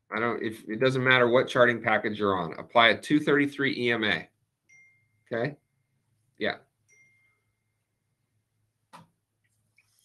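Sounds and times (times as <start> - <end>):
faint short ding: 4.7 - 5.3.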